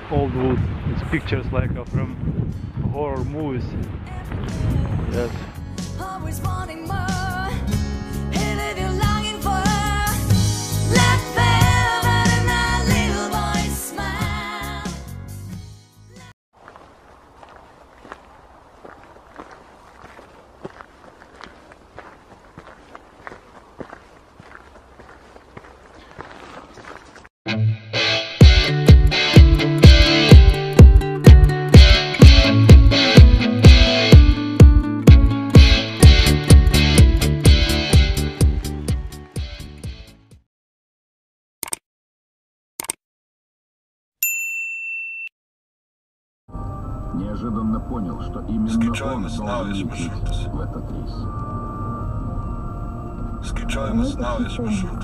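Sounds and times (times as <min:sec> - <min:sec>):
footsteps on forest floor: 0:16.6 - 0:27.3
loud music: 0:27.5 - 0:40.1
notification bell ding: 0:44.2 - 0:45.3.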